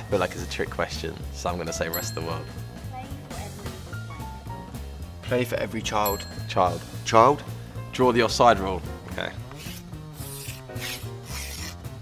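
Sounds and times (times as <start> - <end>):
chalk scratching on chalkboard: 9.4 - 11.9.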